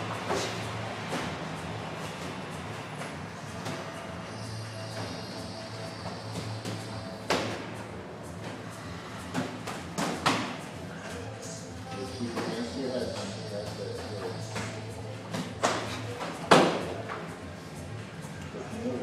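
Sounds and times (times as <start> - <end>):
gym background music: 0.0 - 19.0
slaps of punches and kicks: 9.3 - 10.6
voices: 10.8 - 19.0.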